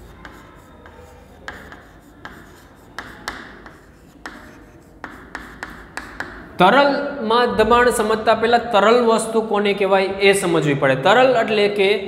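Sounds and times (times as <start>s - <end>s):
chalk scratching on chalkboard: 0.0s - 6.5s
chalk tapping on board: 0.0s - 6.6s.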